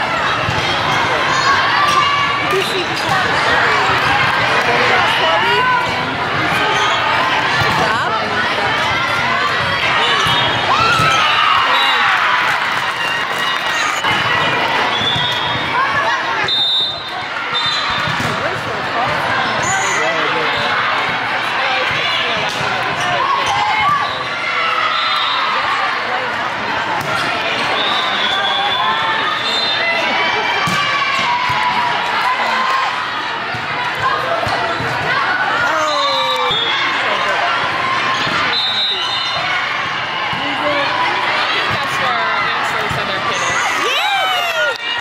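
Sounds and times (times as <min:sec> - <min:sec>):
people talking and calling out: 0:00.0 - 0:45.0.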